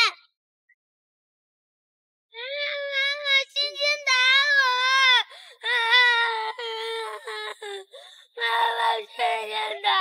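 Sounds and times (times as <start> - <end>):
young boy crying loudly: 4.4 - 10.0.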